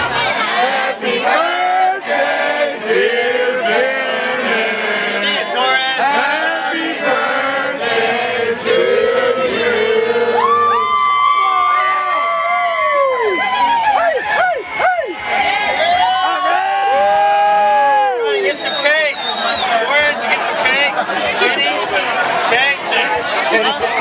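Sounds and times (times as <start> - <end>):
mixed voices: 0.0 - 17.0, 18.1 - 24.0
party crowd cheering and shouting: 0.0 - 24.0
long held whoops: 10.3 - 15.2, 15.8 - 18.4.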